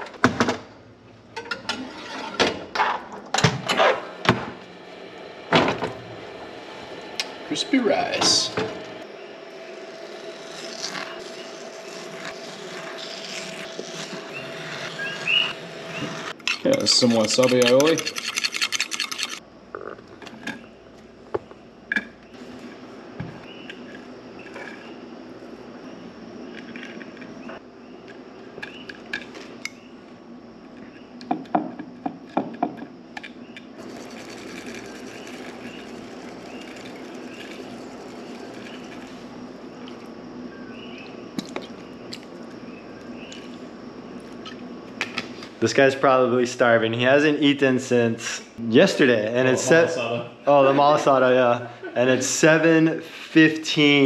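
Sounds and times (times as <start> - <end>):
low background hum: 0.0 - 54.0
fork scraping ceramic bowl: 16.4 - 19.4
utensils and dishes clinking: 16.4 - 19.4.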